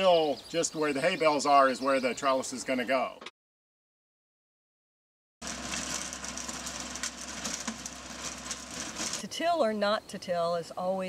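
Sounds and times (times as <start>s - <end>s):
riding lawn mower engine: 5.4s - 9.2s.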